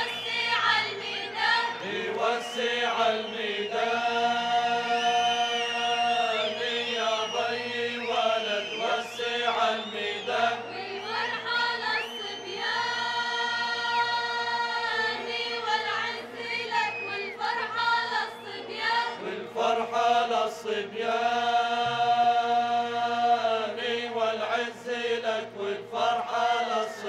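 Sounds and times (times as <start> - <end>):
chorus of men and women singing: 0.0 - 27.0.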